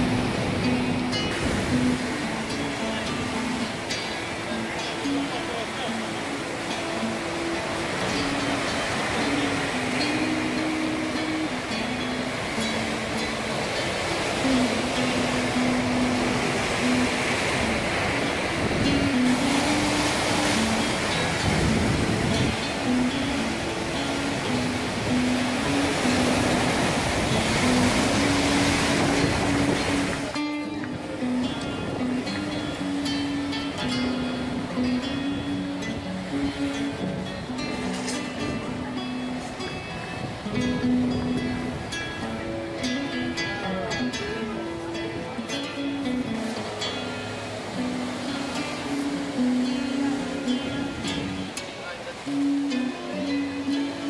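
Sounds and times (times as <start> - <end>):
waves breaking over rocks: 0.0 - 54.0.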